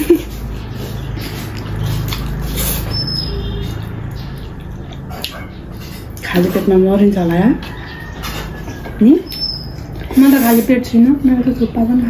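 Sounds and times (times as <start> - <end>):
noodles slurped and chewed: 0.2 - 6.5.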